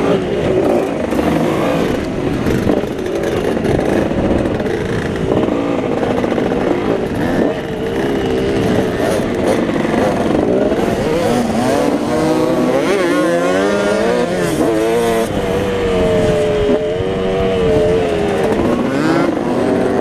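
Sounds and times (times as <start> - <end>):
constant rushing noise: 0.0 - 20.0
motocross bike engine revving: 0.0 - 20.0.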